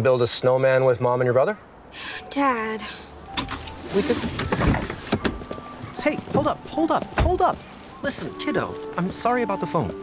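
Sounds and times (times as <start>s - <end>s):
car door thuds: 4.2s - 6.6s.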